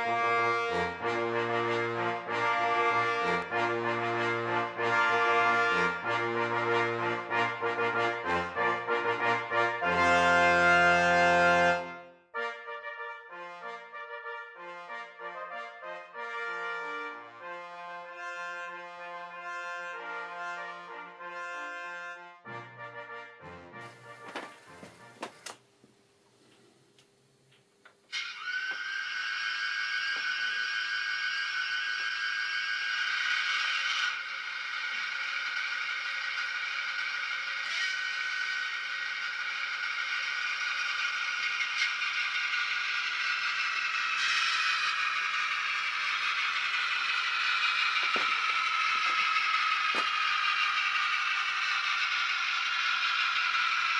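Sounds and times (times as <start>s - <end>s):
model locomotive whining: 0.0s - 11.9s, 16.2s - 22.2s, 23.8s - 25.6s, 28.0s - 53.9s
brass intro music: 0.0s - 25.2s.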